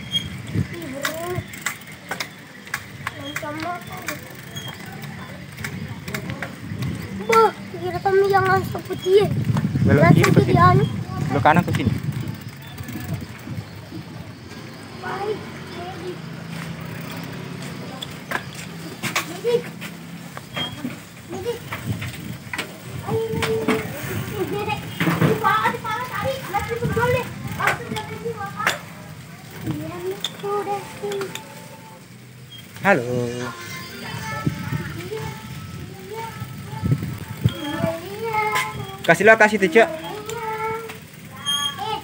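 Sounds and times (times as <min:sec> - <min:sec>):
bicycle clicks and rattles: 0:00.0 - 0:42.0
children talking and calling out: 0:00.0 - 0:42.0.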